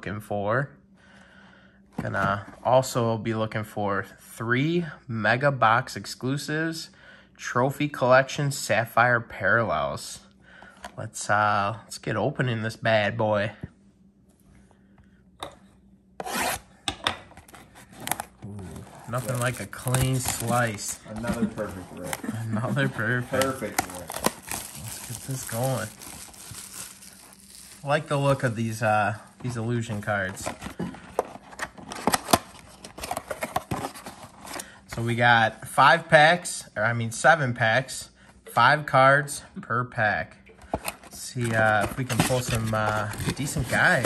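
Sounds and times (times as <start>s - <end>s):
plastic shrink wrap tearing: 17.8s - 28.8s
cardboard box flap crackling: 18.0s - 22.2s, 22.8s - 27.8s.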